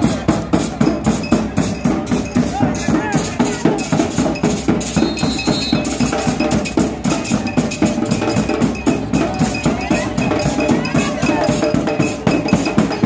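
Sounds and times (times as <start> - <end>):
cowbell struck in fast rhythm: 0.0 - 13.0
drums: 0.0 - 13.0.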